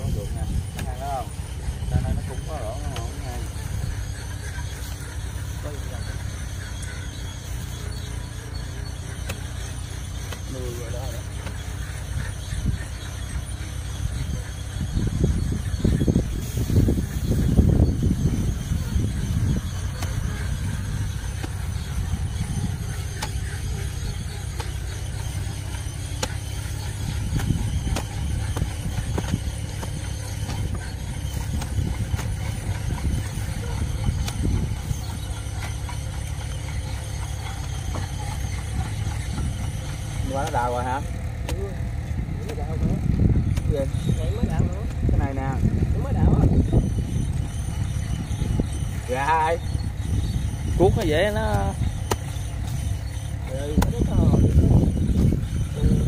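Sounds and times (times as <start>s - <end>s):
wind rumble on microphone: 0.0s - 56.0s.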